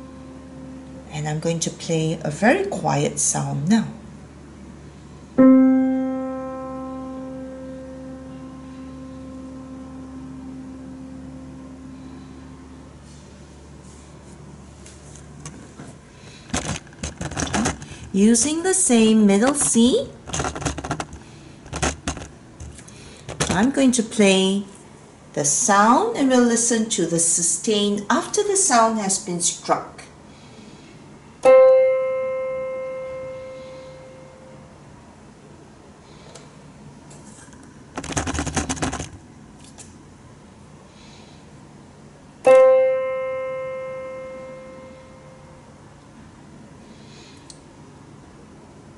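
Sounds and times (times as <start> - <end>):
digital piano note: 0.0 - 1.6, 5.4 - 13.2, 31.4 - 34.7, 42.4 - 45.7
low room hum: 0.0 - 48.9
rustling handling noise: 13.0 - 18.1.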